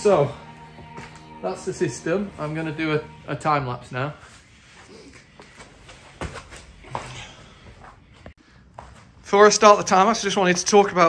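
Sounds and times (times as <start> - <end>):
soft footsteps: 0.0 - 3.0, 4.0 - 9.4
body movement: 4.1 - 9.3.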